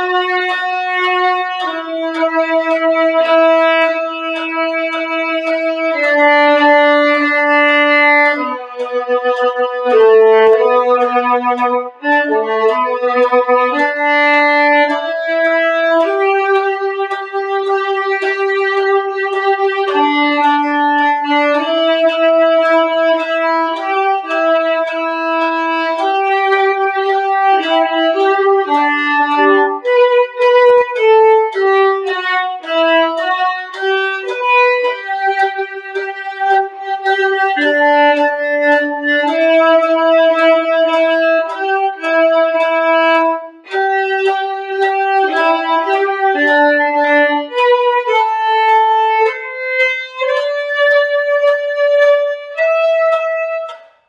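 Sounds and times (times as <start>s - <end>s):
solo violin melody: 0.0s - 54.0s.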